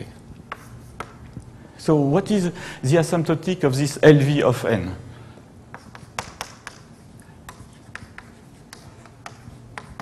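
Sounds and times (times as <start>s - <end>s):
chalk tapping on blackboard: 0.5s - 1.2s, 5.7s - 10.0s.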